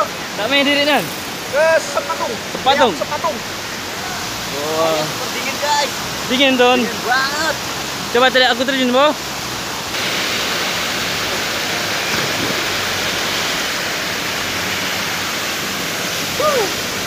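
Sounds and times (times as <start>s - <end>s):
river water rushing: 0.0s - 17.0s
splashing of person swimming: 12.0s - 13.5s
person shouting: 16.4s - 16.8s.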